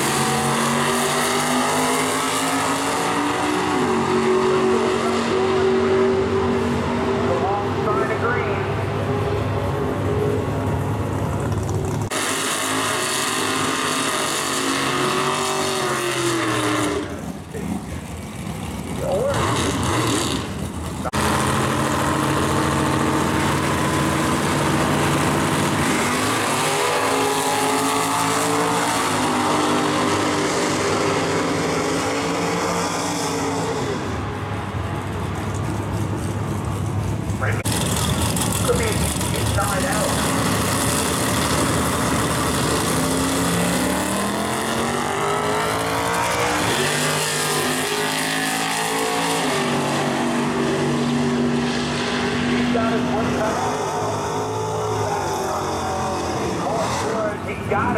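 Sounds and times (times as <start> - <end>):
car engines revving: 0.0 - 57.9.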